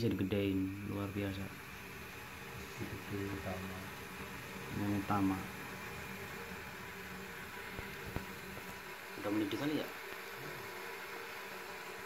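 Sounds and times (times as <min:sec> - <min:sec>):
gas stove burner hissing: 0:00.0 - 0:12.0.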